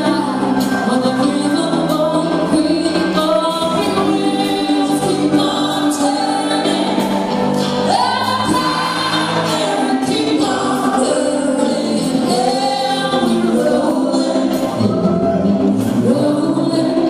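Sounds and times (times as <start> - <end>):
live band playing: 0.0 - 17.0
voices singing together: 0.0 - 17.0.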